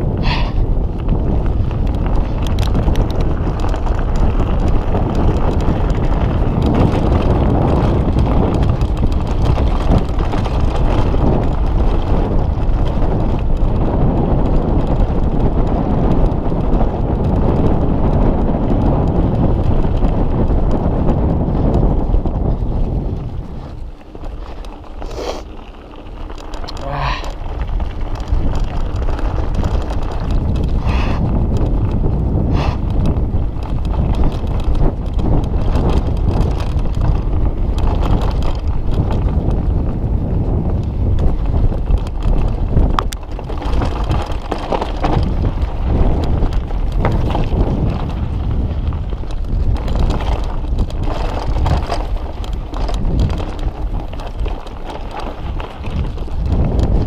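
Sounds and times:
bike rattling over bumps: 0.0 - 57.0
wind rumble on microphone: 0.0 - 57.0
tyres rolling over dirt and stones: 0.1 - 57.0.

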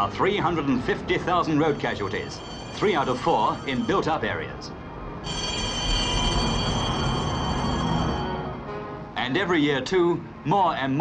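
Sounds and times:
railway carriage rumbling: 0.0 - 10.4
wheels squealing on rails: 1.2 - 8.6.

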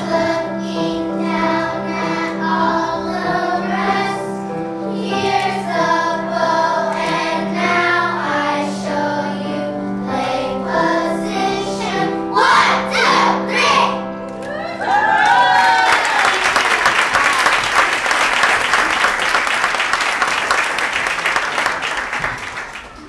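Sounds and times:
children singing in unison: 0.0 - 14.0.

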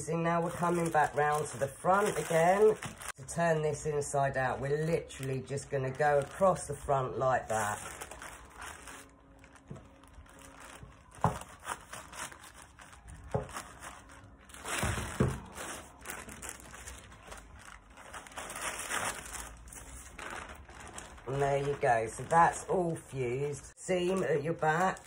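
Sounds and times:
plastic and paper crinkling: 0.0 - 25.0.

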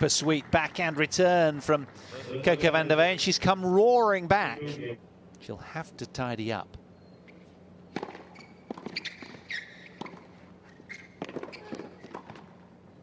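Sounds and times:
shoe squeaks: 7.0 - 12.3
tennis ball struck by rackets: 7.9 - 10.3, 11.0 - 12.5.

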